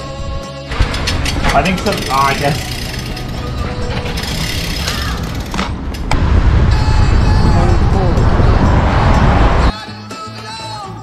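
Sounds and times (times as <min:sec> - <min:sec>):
background music: 0:00.0 - 0:05.5, 0:06.6 - 0:11.0
bicycle freehub ratcheting clicks: 0:00.9 - 0:06.1.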